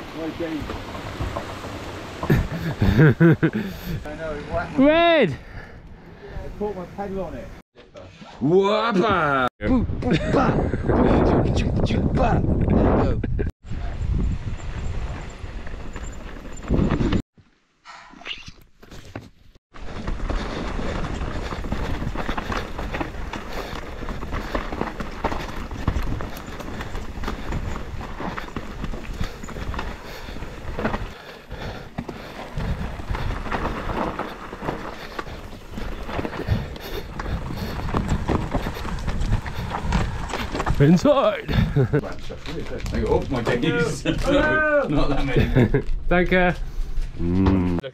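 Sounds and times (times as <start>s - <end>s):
bike rattling over rough trail: 0.0s - 5.7s, 14.0s - 17.2s, 18.9s - 46.9s
wind rumble on microphone: 9.6s - 17.2s, 19.9s - 40.9s.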